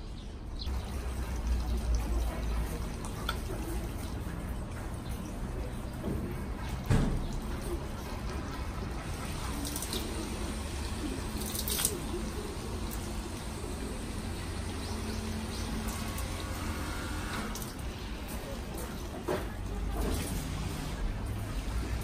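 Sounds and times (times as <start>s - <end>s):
water stream splashing into basin: 0.7s - 22.0s.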